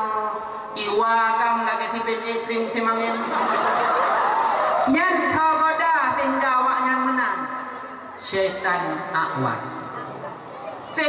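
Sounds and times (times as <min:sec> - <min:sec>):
amplified speech: 0:00.0 - 0:11.0
people chuckling: 0:03.2 - 0:04.8.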